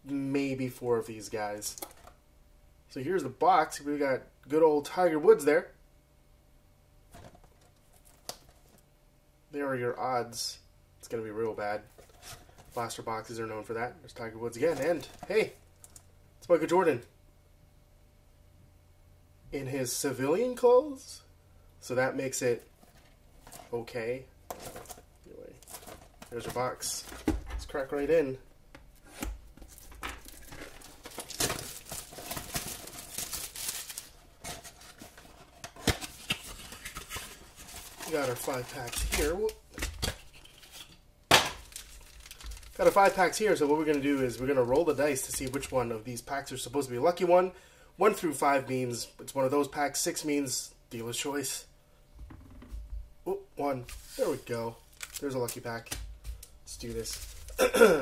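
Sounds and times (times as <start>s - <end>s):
plastic wrap crinkling: 24.5s - 28.3s, 28.9s - 45.8s, 53.8s - 57.8s.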